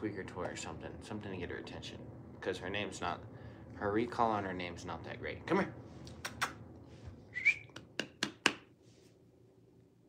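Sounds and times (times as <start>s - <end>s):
sharp mouth clicks: 6.1s - 6.6s
short whistle-like chirp: 7.3s - 7.8s.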